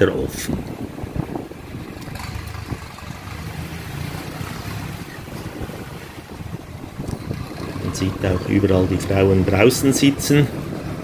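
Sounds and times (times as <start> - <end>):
wind noise on microphone: 0.0 - 11.0
scooter engine humming: 1.0 - 9.6.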